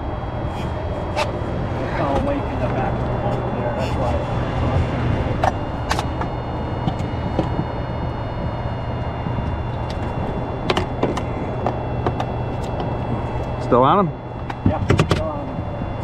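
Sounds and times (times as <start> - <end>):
faint high whine: 0.0 - 16.0
motor hum: 0.0 - 16.0
sharp clicks and knocks: 14.4 - 16.0.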